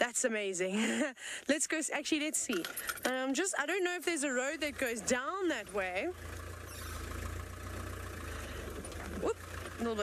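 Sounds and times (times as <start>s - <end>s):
vehicle engine rumble: 2.4s - 10.0s
road and wind noise: 2.6s - 10.0s.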